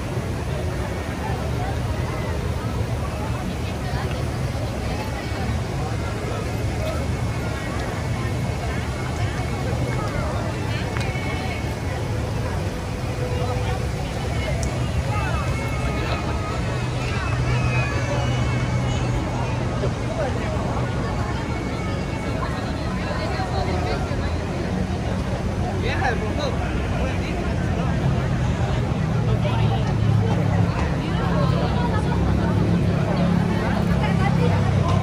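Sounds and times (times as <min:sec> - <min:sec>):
crowd talking: 0:00.0 - 0:35.0
traffic rumble: 0:00.0 - 0:35.0.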